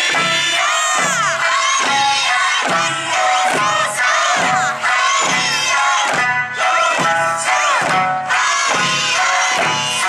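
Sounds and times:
hand drums beating: 0:00.0 - 0:10.0
music: 0:00.0 - 0:10.0.

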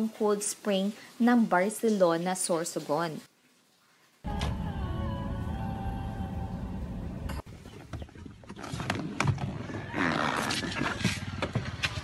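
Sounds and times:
music with held tones: 0:04.3 - 0:07.4.

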